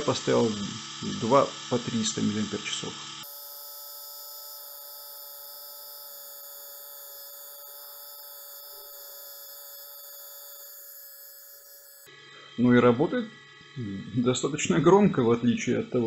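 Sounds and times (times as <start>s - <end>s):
electric shaver motor humming: 0.0s - 16.0s.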